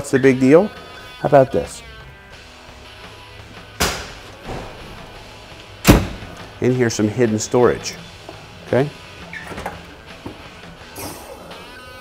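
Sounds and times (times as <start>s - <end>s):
background music: 0.0s - 12.0s
sharp clunk from truck body: 3.8s - 4.9s, 5.8s - 6.3s.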